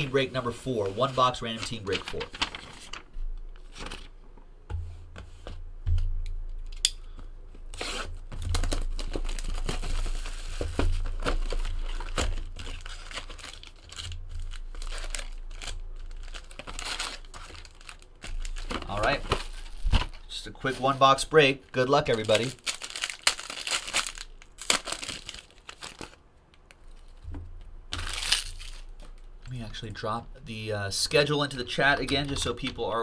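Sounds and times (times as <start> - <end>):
wrappers crinkling: 0.0 - 4.2, 7.7 - 21.2, 21.8 - 27.2, 27.9 - 29.3.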